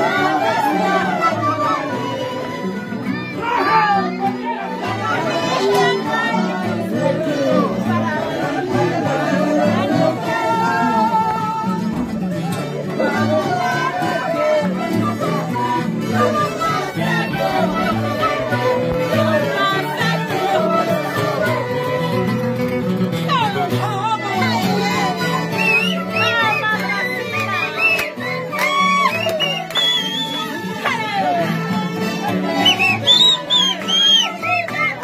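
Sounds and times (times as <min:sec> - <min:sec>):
violin melody with vibrato: 0:00.0 - 0:11.8, 0:12.7 - 0:27.6, 0:30.4 - 0:32.7
accordion: 0:00.0 - 0:35.0
acoustic guitars bass pattern: 0:02.5 - 0:25.9.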